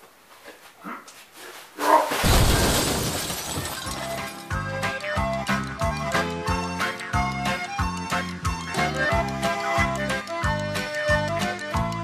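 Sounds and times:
crash with shattering glass: 0:02.2 - 0:04.5.

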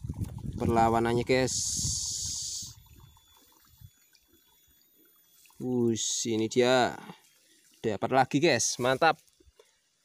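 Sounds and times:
water drips and splashes: 0:00.0 - 0:10.0.

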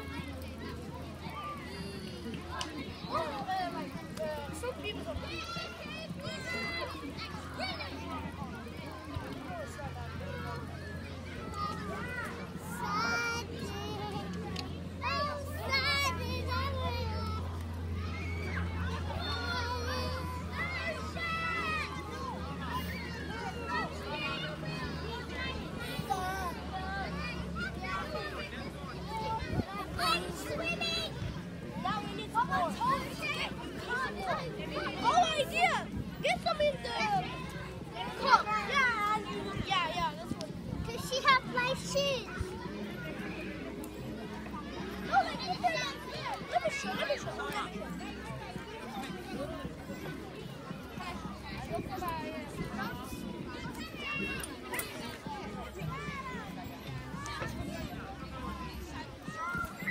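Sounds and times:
children chattering and calling: 0:00.0 - 0:59.9.

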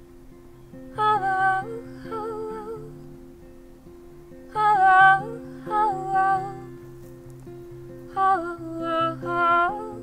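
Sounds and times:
acoustic guitar playing: 0:00.0 - 0:10.0
woman singing wordless phrases: 0:00.9 - 0:03.1, 0:04.5 - 0:06.8, 0:08.1 - 0:10.0.

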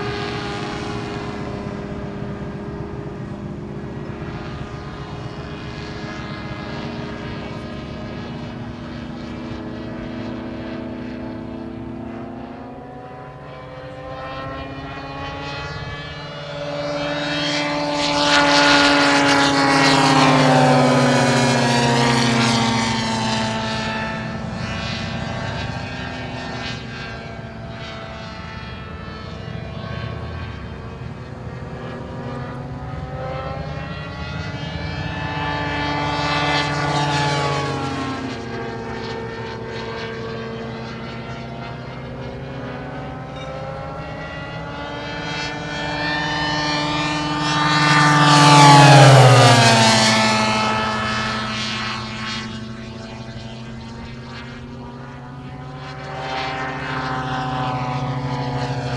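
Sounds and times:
model plane engines droning: 0:00.0 - 0:58.9.

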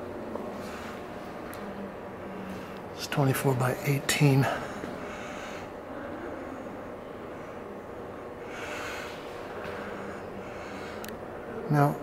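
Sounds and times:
low room rumble: 0:00.0 - 0:12.0
person breathing close: 0:04.4 - 0:06.5, 0:08.4 - 0:11.7.

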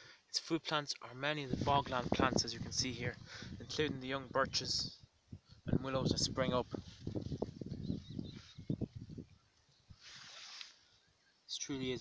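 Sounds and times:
vegetation rustling against camera: 0:06.4 - 0:11.0
faint bird chirps: 0:07.1 - 0:12.0.

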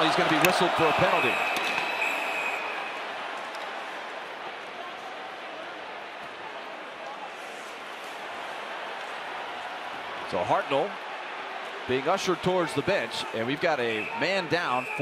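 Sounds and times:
arena crowd noise: 0:00.0 - 0:15.0
referee's whistle: 0:00.8 - 0:03.0, 0:13.2 - 0:15.0.

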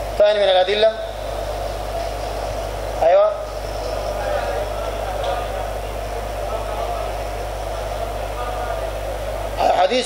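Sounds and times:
low constant hum: 0:00.0 - 0:10.0.

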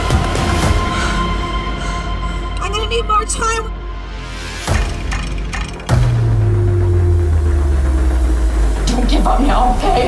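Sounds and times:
sharp percussive hit: 0:04.7 - 0:06.8
deep boom with low drone: 0:05.9 - 0:09.4.

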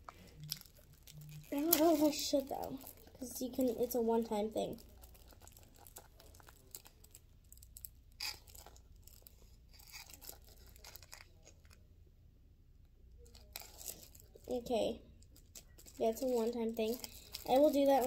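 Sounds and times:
plastic packaging crinkling: 0:00.0 - 0:11.8, 0:13.2 - 0:18.0
plastic tearing crackles: 0:00.0 - 0:11.8, 0:13.2 - 0:18.0.

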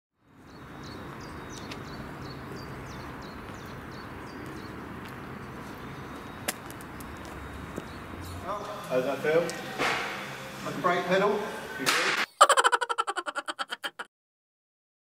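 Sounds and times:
outdoor background noise: 0:00.2 - 0:14.0
small bird chirping: 0:00.4 - 0:04.8.

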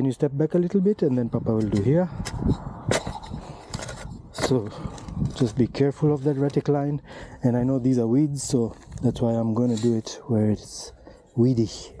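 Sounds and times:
earth scraping and crunching: 0:00.8 - 0:11.5
hoe striking dry soil: 0:01.5 - 0:05.5.

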